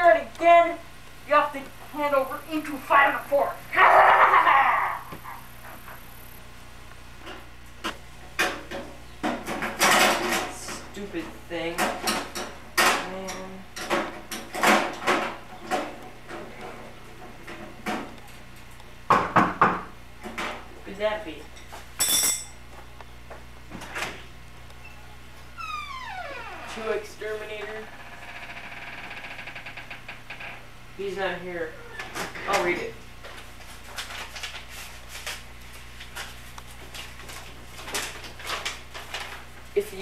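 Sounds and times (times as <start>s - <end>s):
unclear speech: 0.0s - 4.1s.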